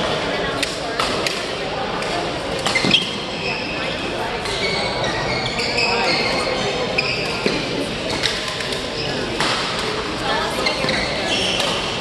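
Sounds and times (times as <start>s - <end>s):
echoing chatter: 0.0s - 12.0s
shoe squeak on court floor: 2.6s - 9.5s, 10.6s - 12.0s.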